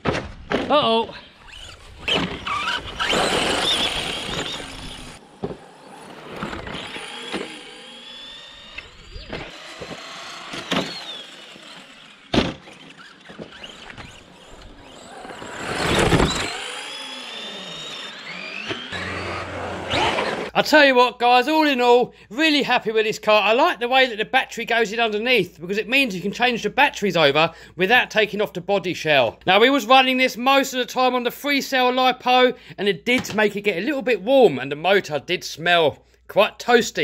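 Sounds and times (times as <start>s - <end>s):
electric motor whining: 1.4s - 20.5s.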